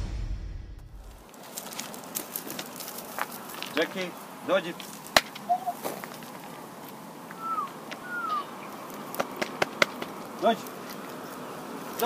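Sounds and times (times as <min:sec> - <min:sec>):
outdoor hiss: 0:01.1 - 0:12.0
man calling: 0:05.4 - 0:05.8, 0:07.4 - 0:08.6
man whistling: 0:07.4 - 0:08.4.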